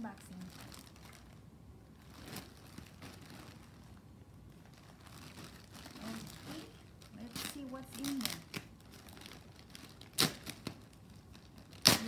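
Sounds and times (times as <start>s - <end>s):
plastic bag rustling: 0.0s - 12.0s.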